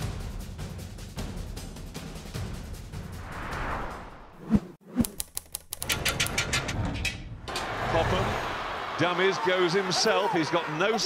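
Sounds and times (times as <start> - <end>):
rapid clicks: 5.0 - 6.6.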